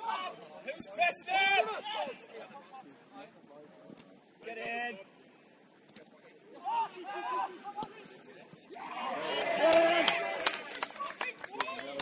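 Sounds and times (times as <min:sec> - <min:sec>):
footballers shouting: 0:00.0 - 0:02.5, 0:06.5 - 0:12.0.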